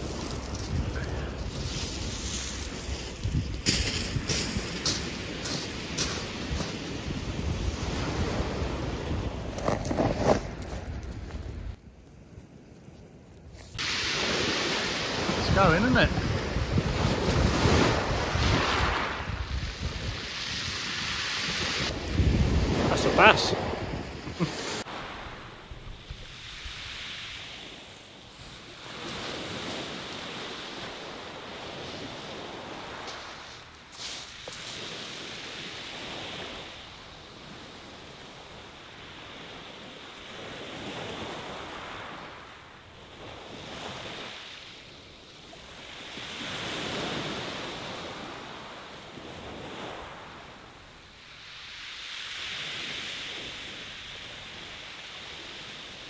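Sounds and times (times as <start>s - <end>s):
waves washing up shingle: 0.0s - 11.2s, 13.7s - 45.0s, 45.6s - 56.0s.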